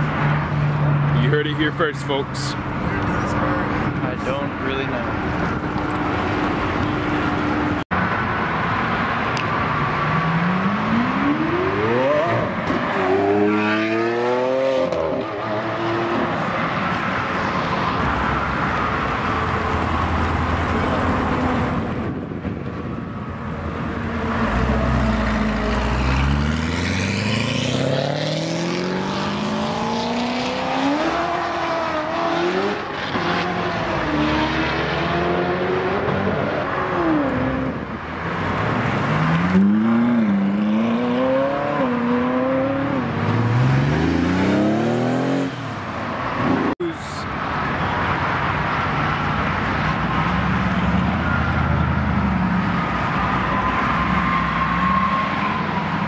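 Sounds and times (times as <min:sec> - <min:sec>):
sports cars accelerating hard: 0:09.9 - 0:16.9, 0:24.2 - 0:45.8.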